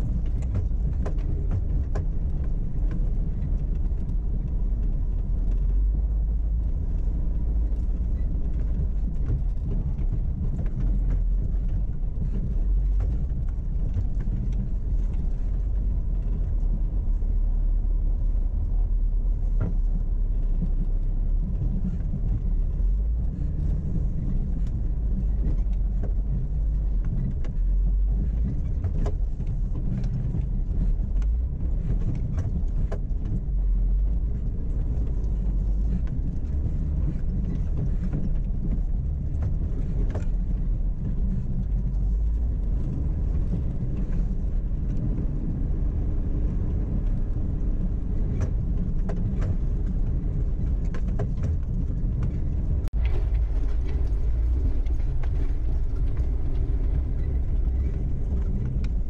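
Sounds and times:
vehicle engine rumble: 0.0s - 59.0s.

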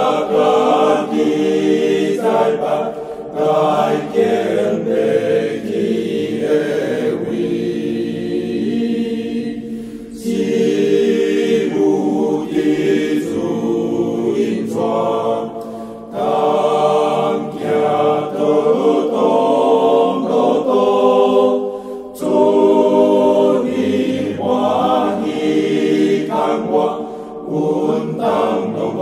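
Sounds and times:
voices singing a hymn: 0.0s - 29.0s.

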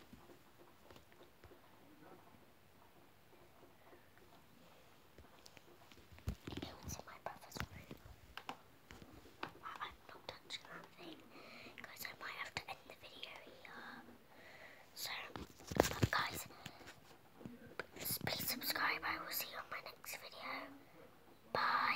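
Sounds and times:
girl whispering: 6.4s - 8.0s, 9.6s - 14.2s, 15.0s - 16.6s, 18.0s - 20.8s, 21.5s - 21.9s.

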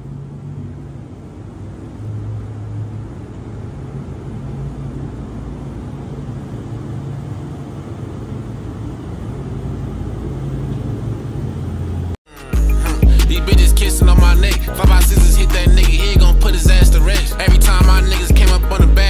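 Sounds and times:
car engine low rumble: 0.0s - 12.2s, 12.9s - 19.0s.

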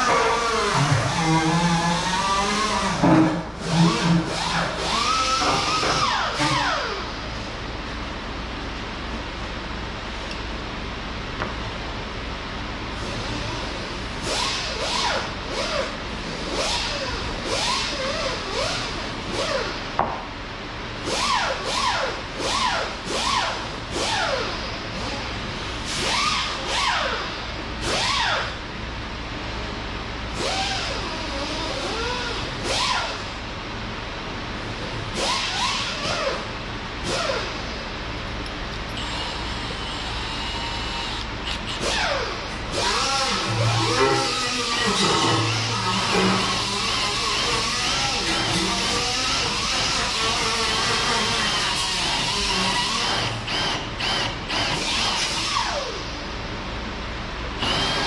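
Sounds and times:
cordless drill motor whine: 38.9s - 56.0s, 57.6s - 58.0s.

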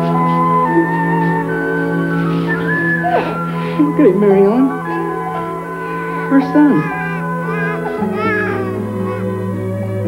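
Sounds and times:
soft background music: 0.0s - 10.0s
newborn baby crying: 4.7s - 10.0s.

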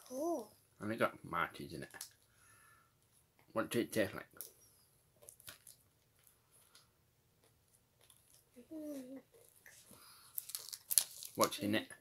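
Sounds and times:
child chewing chocolate: 5.2s - 11.4s
wrapper crackle: 10.3s - 11.6s.

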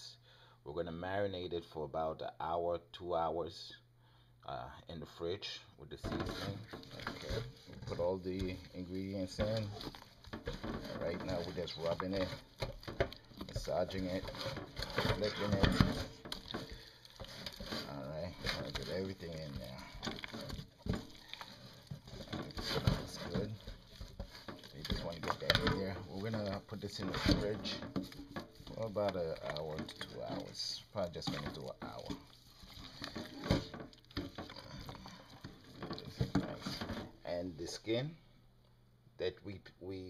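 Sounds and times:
bowl knocking and rustling: 6.0s - 37.2s
hands massaging wet meat: 6.3s - 37.1s.

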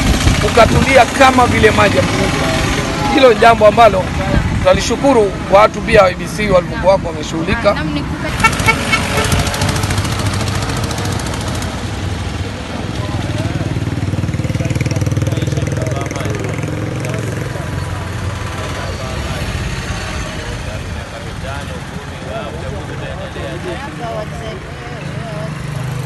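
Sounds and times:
small engine running close by: 0.0s - 4.4s, 8.3s - 12.5s, 13.1s - 22.6s
vehicle hum: 0.0s - 26.0s
people talking: 0.4s - 9.8s, 14.4s - 25.8s.

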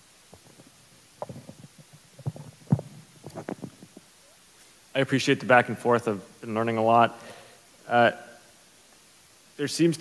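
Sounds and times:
microphone handling noise: 0.3s - 4.2s.

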